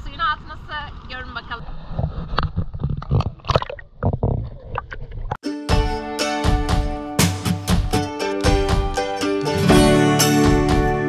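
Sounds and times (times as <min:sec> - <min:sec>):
knocks and gurgles: 0:01.9 - 0:05.4
plucked-string background music: 0:05.4 - 0:11.0.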